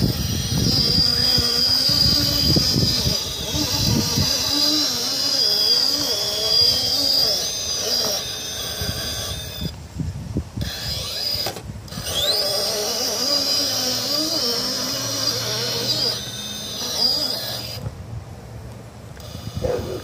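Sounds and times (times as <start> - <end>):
electric motor whining: 0.0 - 18.0, 19.1 - 20.0.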